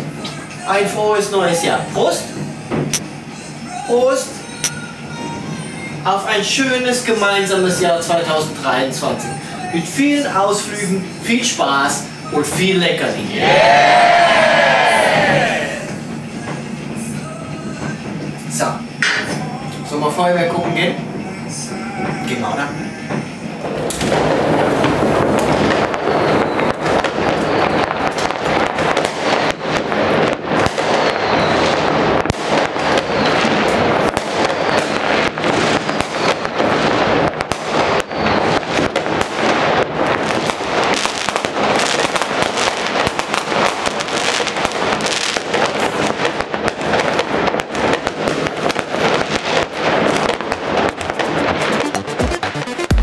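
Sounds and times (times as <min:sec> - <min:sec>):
fireworks bangs and crackles: 0:00.0 - 0:53.0.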